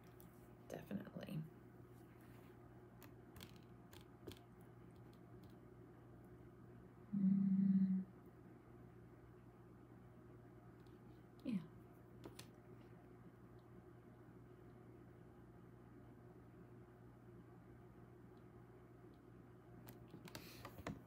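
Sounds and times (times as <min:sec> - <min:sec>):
faint background hum: 0:00.0 - 0:21.0
short low hum: 0:05.8 - 0:11.9.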